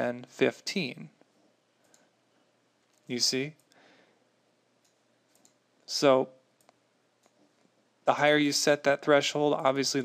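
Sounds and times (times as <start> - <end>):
computer mouse clicks: 4.8 - 5.6, 6.6 - 7.4.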